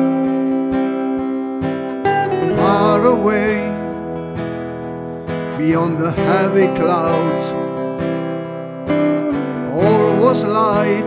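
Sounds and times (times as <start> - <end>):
strummed acoustic guitar chords: 0.0 - 11.0
man singing: 2.4 - 4.1, 5.5 - 7.8, 9.6 - 11.0.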